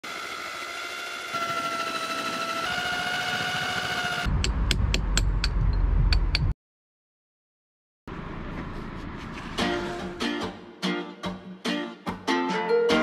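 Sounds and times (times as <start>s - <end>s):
electric drill whining: 0.0s - 4.3s
heavy low rumble with knocks: 4.3s - 6.5s.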